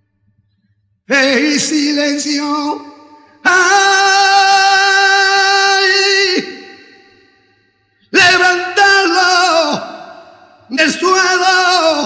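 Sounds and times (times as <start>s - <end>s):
man singing unaccompanied: 1.1s - 6.9s, 8.1s - 9.9s, 10.7s - 12.0s.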